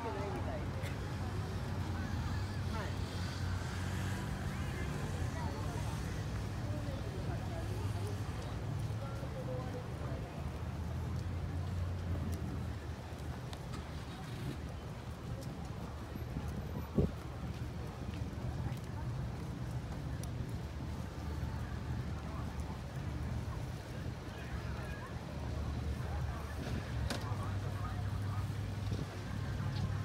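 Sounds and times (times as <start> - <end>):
faint voices of passers-by: 0.0 - 30.0
low outdoor rumble: 0.0 - 30.0.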